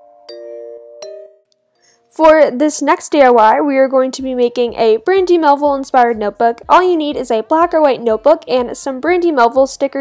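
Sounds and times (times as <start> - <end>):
chime-like music notes: 0.0 - 1.5.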